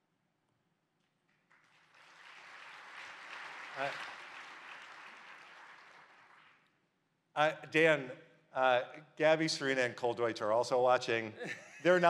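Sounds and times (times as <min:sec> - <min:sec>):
audience applause: 0:01.5 - 0:06.7.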